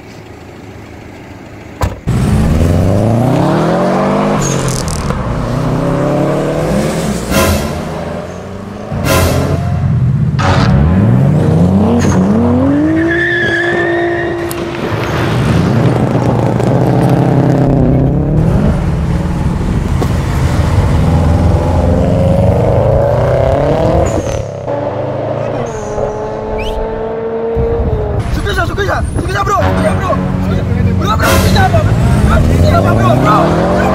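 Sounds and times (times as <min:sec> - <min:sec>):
car engine revving hard: 0:02.1 - 0:09.8, 0:10.4 - 0:13.1, 0:15.4 - 0:28.2, 0:31.7 - 0:33.9.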